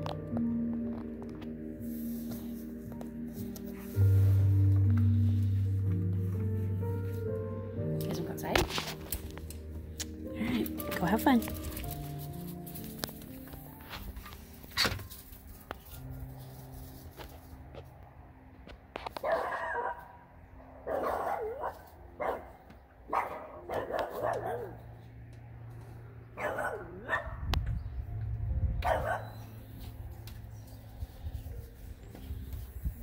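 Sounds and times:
background music: 0:00.0 - 0:33.0
dog barking: 0:19.2 - 0:20.2, 0:20.8 - 0:24.8, 0:26.4 - 0:27.4, 0:28.8 - 0:29.5.

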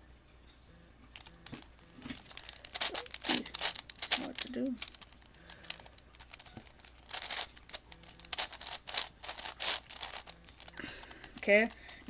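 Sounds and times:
puzzle cube clicking and rattling: 0:01.2 - 0:12.0.

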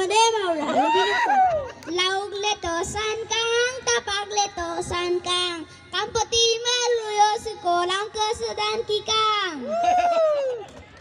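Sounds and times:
child singing into a microphone: 0:01.9 - 0:09.6.

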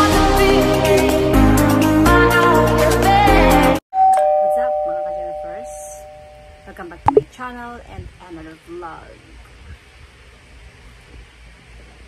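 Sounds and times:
music: 0:00.0 - 0:03.8
two-note doorbell chime: 0:04.0 - 0:06.6.

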